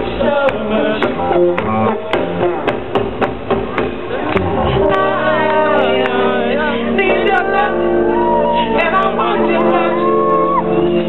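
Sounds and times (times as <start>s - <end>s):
funk band playing: 0.0s - 11.0s
drums steady beat: 0.5s - 5.1s.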